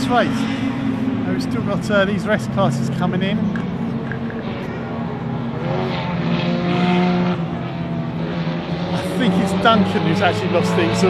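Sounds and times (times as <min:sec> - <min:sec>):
racing car engines passing: 0:00.0 - 0:11.0.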